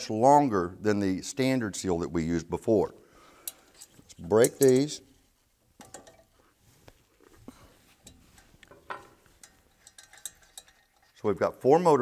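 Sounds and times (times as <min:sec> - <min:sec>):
wrench clicking on metal bolts: 0:08.8 - 0:11.0.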